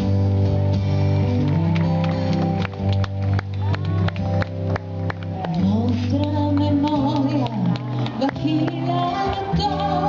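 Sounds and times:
person singing: 5.4s - 10.0s.

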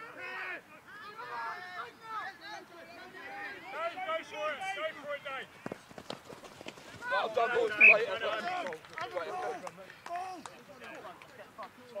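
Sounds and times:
players shouting: 6.9s - 10.4s.

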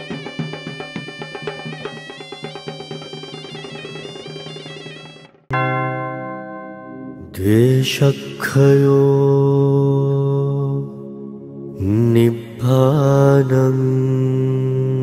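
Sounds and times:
man chanting: 7.2s - 11.2s, 11.8s - 15.0s.

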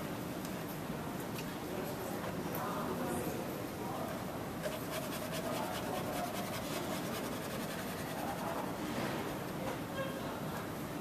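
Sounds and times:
room noise: 0.0s - 11.0s
paintbrush dabbing on canvas: 4.6s - 9.8s.

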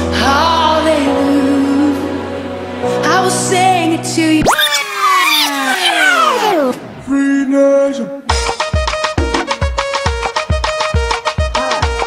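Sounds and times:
power-down whine sliding down: 4.4s - 7.2s.

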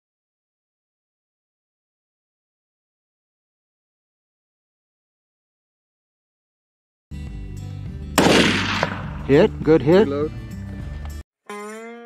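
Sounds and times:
background music: 7.1s - 11.9s
gunshot with echo: 8.2s - 9.4s.

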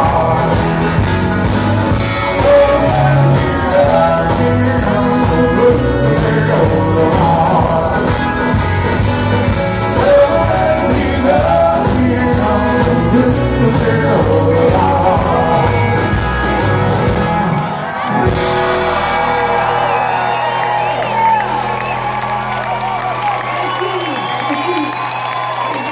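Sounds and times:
live rock band playing: 0.0s - 25.9s
crowd cheering and whooping: 16.9s - 25.9s.

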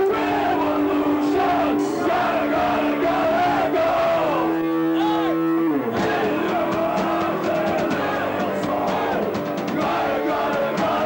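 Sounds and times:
band holding low note: 0.0s - 11.0s.

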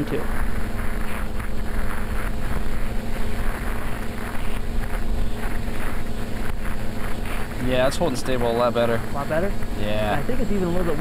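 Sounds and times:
model airplane motors running: 0.0s - 11.0s
wind noise on microphone: 0.0s - 11.0s.

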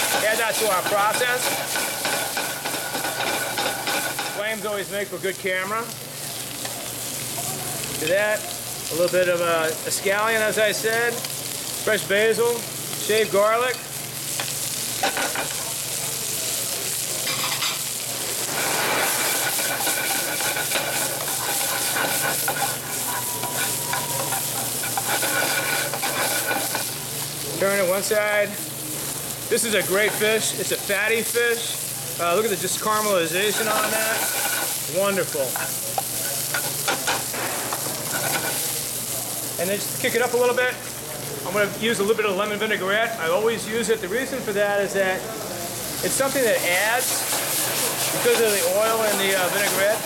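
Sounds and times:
food sizzling in oil: 0.0s - 50.0s
metal tongs clicking and scraping: 19.2s - 26.8s.

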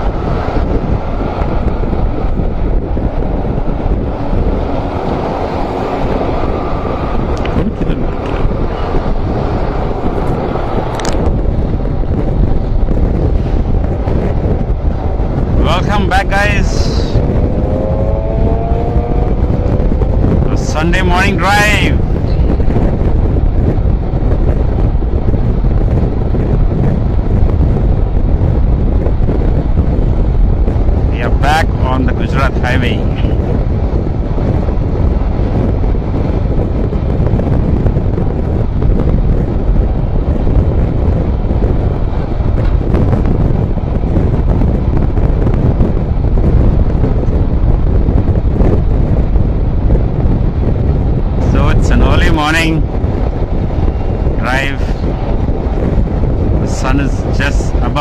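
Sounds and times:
wind rushing over microphone: 0.0s - 58.0s
motorcycle engine: 17.1s - 20.7s.

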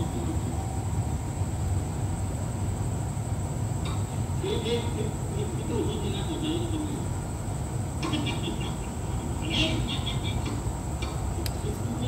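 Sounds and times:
diesel train idling rumble: 0.0s - 12.0s.

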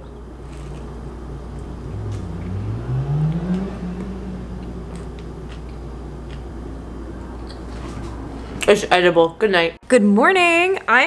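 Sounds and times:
person chewing food: 3.3s - 7.7s.

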